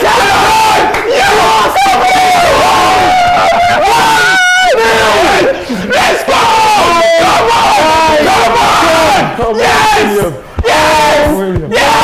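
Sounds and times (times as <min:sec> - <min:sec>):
men yelling and screaming: 0:00.0 - 0:12.0.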